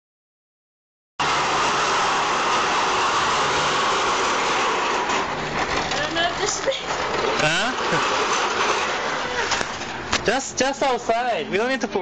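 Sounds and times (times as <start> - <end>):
casters rolling over concrete: 1.4 - 11.1.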